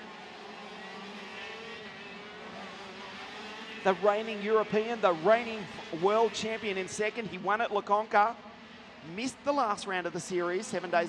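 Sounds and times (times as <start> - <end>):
kart engines droning: 0.0 - 11.0.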